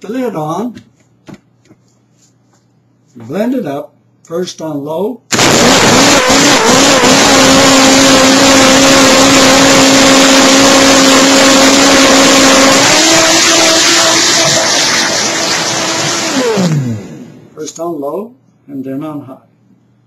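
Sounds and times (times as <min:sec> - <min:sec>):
blender motor running: 0:05.3 - 0:17.4.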